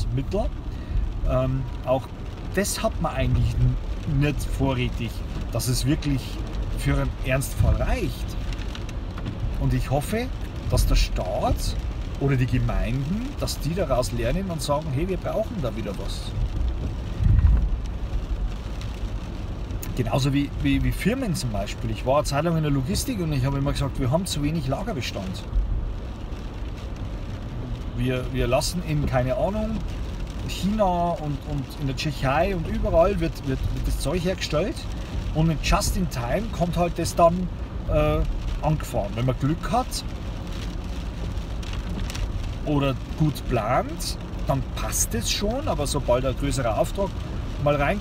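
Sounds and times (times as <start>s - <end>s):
road and tyre rumble in car: 0.0s - 48.0s.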